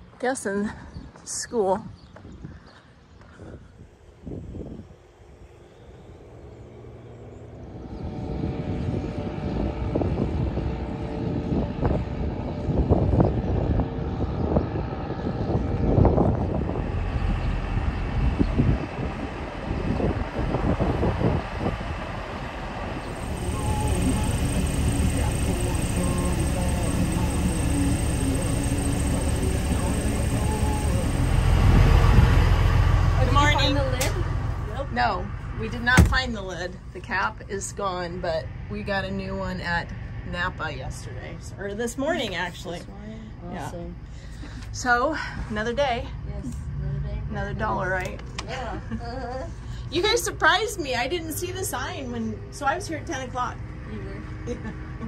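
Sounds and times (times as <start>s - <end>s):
steady engine hum: 3.0s - 55.0s
diesel trucks driving past: 16.6s - 36.6s.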